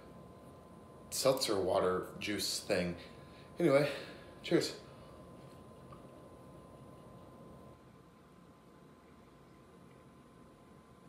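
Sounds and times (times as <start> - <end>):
thin steady whine: 0.0 - 11.0.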